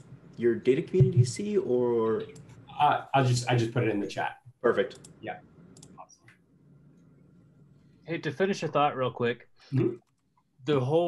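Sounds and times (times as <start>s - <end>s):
faint computer clicks: 4.8s - 6.4s.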